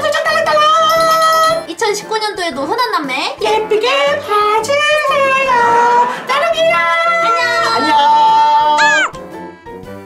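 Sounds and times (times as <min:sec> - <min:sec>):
light backing music: 0:00.0 - 0:10.0.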